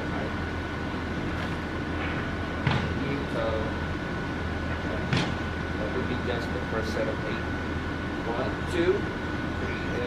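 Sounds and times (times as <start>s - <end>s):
constant low hum: 0.0s - 10.0s.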